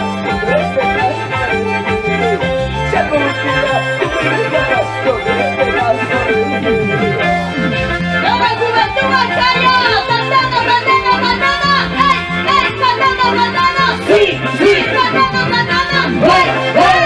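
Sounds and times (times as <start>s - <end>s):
accordion-like keyboard melody: 0.0s - 17.0s
live band playing: 0.0s - 17.0s.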